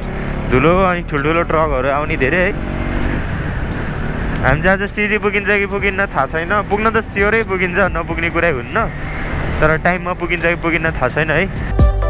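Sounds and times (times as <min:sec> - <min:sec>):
motorcycle engine: 0:00.0 - 0:11.8.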